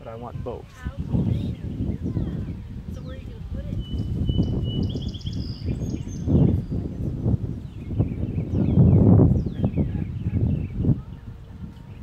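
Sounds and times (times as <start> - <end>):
songbirds chirping: 0.0 - 12.0.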